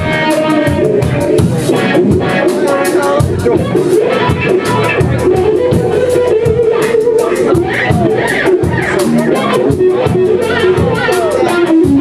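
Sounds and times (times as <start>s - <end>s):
bass guitar: 0.0s - 12.0s
drums with cymbal beat: 0.0s - 12.0s.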